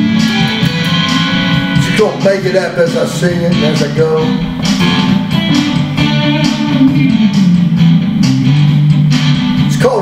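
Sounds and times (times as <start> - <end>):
guitar strumming: 0.0 - 10.0.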